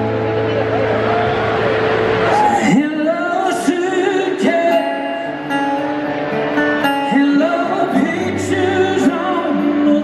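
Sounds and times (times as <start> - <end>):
country band holding a chord: 0.0 - 10.0
crowd voices: 0.0 - 10.0.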